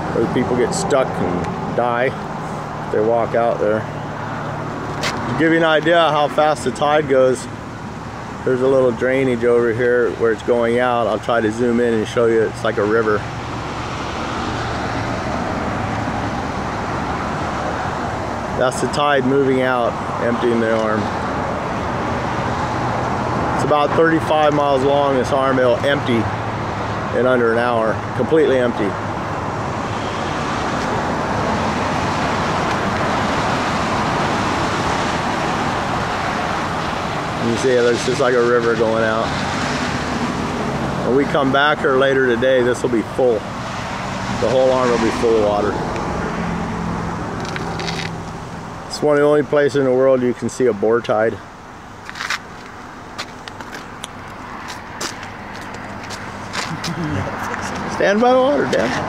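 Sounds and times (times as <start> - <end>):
road traffic rushing: 0.0 - 59.0
wind: 0.0 - 59.0.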